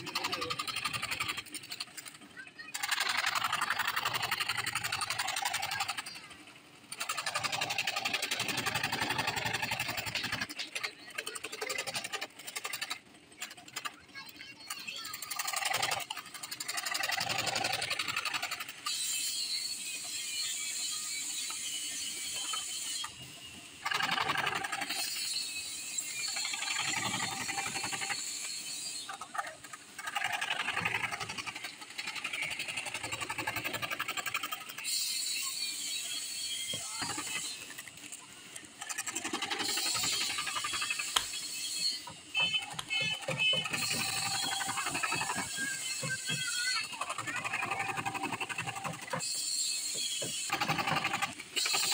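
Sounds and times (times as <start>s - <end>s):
jigsaw cutting board: 42.4s - 51.9s.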